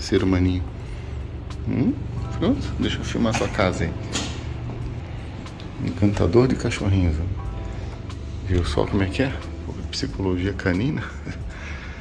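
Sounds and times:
low steady hum: 0.0 - 12.0
door click and swish: 4.1 - 4.5.

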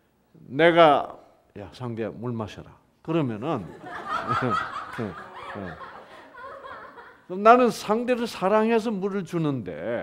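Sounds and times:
audience laughing: 3.6 - 7.3.

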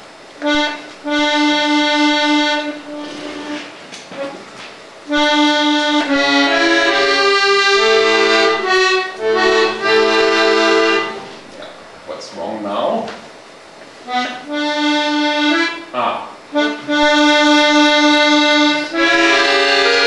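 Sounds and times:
accordion melody over bass notes: 0.0 - 11.9, 14.0 - 20.0.

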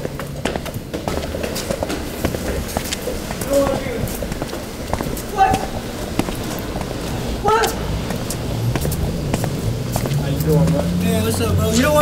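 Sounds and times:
quick footsteps: 0.0 - 12.0.

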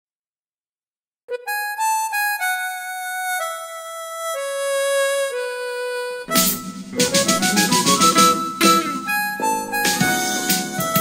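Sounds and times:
wind instrument lullaby melody: 1.3 - 11.0.

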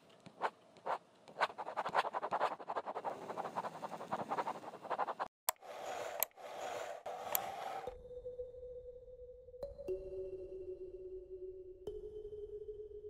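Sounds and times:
chalk rubbing scrape with ticks: 0.4 - 7.9
chalk scratching on chalkboard: 0.4 - 7.9.

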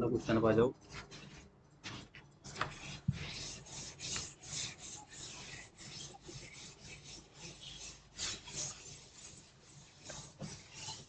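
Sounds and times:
duster scrubbing chalkboard: 0.0 - 11.0.

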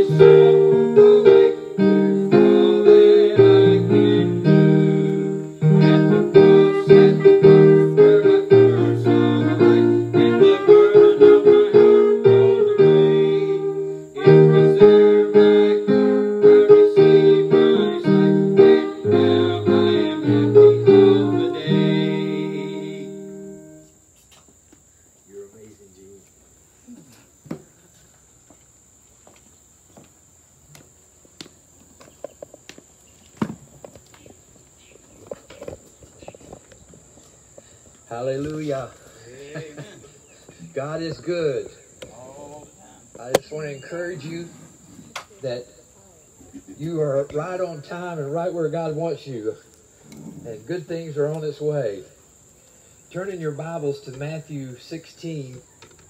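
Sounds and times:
music chord: 0.0 - 24.0
insects chirring: 0.0 - 56.0.

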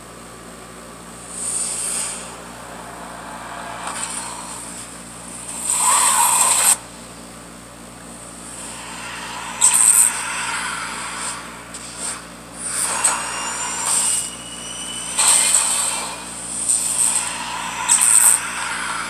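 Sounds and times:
rushing whooshes and hits: 1.4 - 6.5
faint whistling sweeps: 1.4 - 6.8, 8.6 - 19.0.

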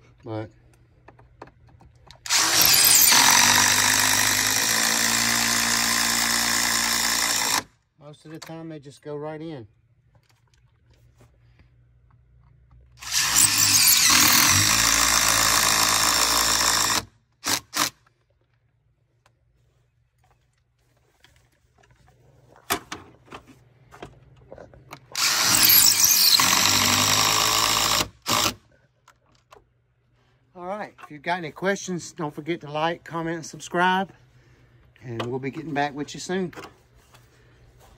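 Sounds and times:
impact driver driving screws: 2.1 - 7.7, 13.0 - 18.1, 25.1 - 28.6.

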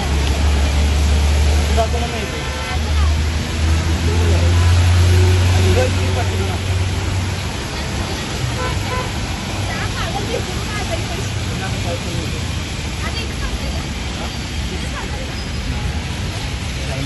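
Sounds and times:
bus engine running: 0.0 - 17.0
heavy rain hissing: 0.0 - 17.0
tyres on wet road: 0.0 - 17.0.

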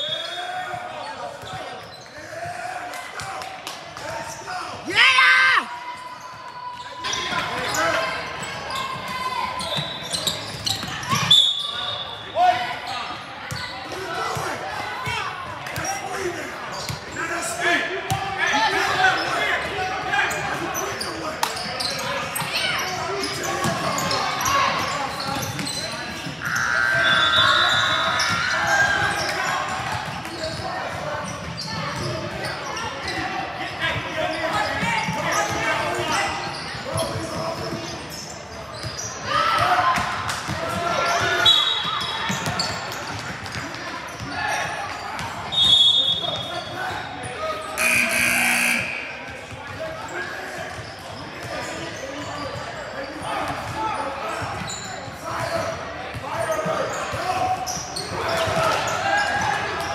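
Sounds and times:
voices echoing: 0.0 - 59.9.

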